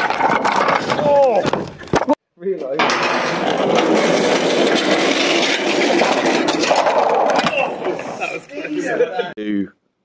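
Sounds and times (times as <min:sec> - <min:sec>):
wheels rolling on steel ramp: 0:00.0 - 0:02.0, 0:02.7 - 0:08.9.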